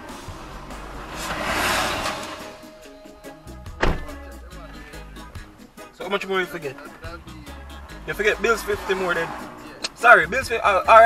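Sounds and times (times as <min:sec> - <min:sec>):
background music: 0:00.0 - 0:11.0
truck passing: 0:00.0 - 0:11.0
sharp knock: 0:03.8 - 0:04.2.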